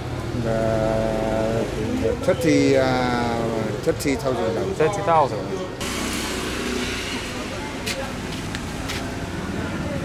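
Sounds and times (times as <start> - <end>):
scooters and cars passing: 0.0 - 10.0.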